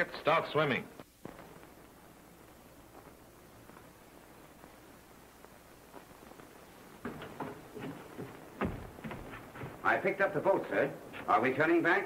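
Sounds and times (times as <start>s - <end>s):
footsteps: 1.0s - 11.3s.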